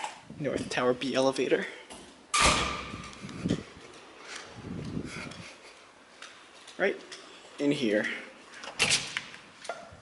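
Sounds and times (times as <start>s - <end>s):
heavy door shutting with thud: 2.4s - 3.1s.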